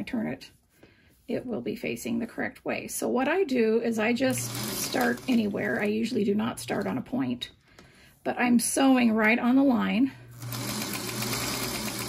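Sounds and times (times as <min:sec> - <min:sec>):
sewing machine stitching: 0:04.2 - 0:07.0, 0:10.3 - 0:12.0.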